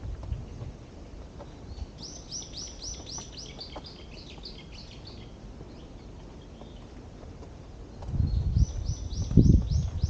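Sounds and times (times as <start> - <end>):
songbird singing: 0.0 - 10.0.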